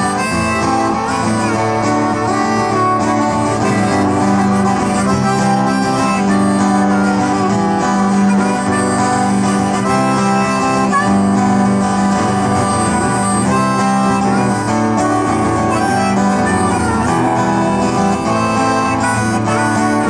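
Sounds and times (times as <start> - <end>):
harmonica melody: 0.0 - 20.0
strummed acoustic guitar: 0.0 - 20.0.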